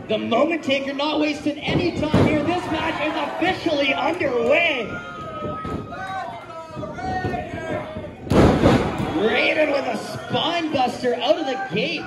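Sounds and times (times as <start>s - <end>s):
body crashing onto wrestling ring: 8.3s - 9.1s.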